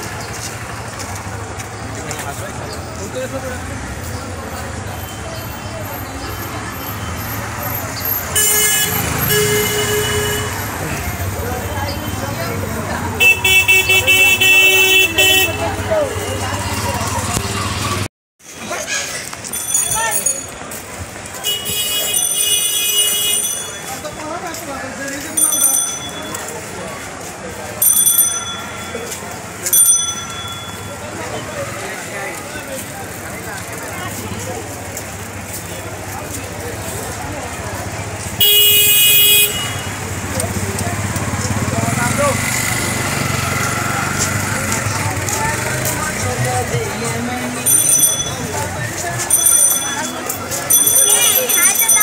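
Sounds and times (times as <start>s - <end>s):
passing voices: 0.0s - 22.4s, 23.4s - 52.0s
crowd noise: 0.0s - 52.0s
street traffic hum: 0.0s - 52.0s
vehicle horn honking: 8.3s - 10.8s, 13.2s - 16.5s, 21.4s - 23.5s, 38.4s - 40.1s.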